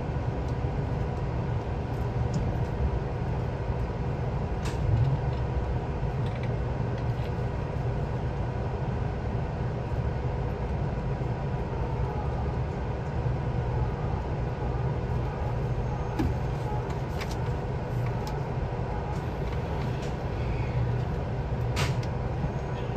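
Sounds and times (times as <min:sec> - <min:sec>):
train car hum and rumble: 0:00.0 - 0:22.9.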